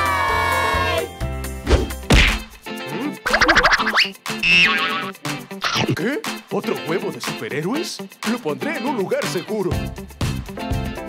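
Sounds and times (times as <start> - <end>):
cartoon whack: 1.7 - 2.6, 3.3 - 6.0
cartoon swoosh: 3.3 - 6.0.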